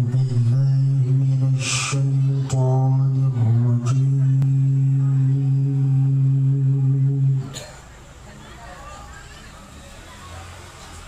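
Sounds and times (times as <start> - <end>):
man reciting a long steady note: 0.0 - 7.7.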